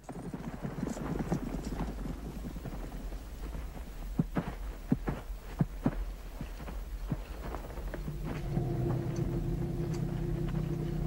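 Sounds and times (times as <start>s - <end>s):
horse hoofbeats: 0.0s - 11.0s
steady low hum: 0.2s - 11.0s.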